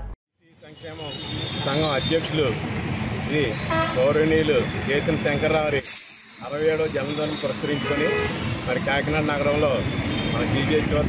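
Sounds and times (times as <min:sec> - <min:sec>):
man talking: 0:00.4 - 0:02.6, 0:03.2 - 0:11.0
traffic noise: 0:00.4 - 0:11.0
vehicle horn toot: 0:03.6 - 0:04.1, 0:07.0 - 0:08.6.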